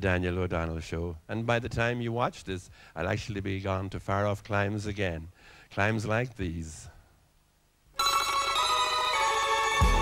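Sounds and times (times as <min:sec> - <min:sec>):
band playing held chord: 0:08.0 - 0:10.0.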